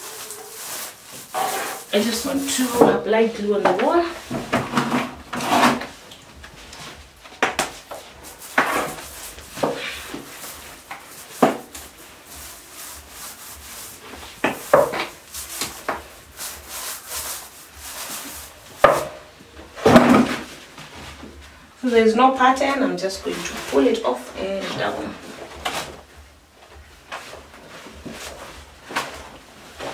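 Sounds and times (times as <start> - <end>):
glue brush scraping on wall: 0.0 - 3.0, 8.1 - 19.2.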